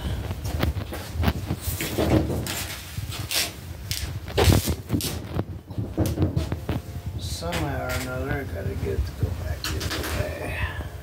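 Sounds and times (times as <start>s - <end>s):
knocks and rustles of handling: 0.2s - 8.3s.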